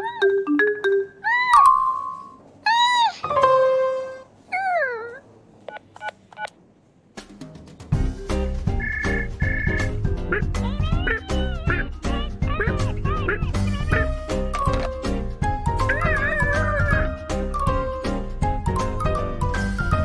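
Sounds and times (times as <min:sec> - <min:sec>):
cartoon gibberish vocal squeaks: 0:01.2 - 0:03.3, 0:04.5 - 0:05.2, 0:10.4 - 0:14.4, 0:15.8 - 0:17.2
background music with steady beat: 0:07.1 - 0:20.0.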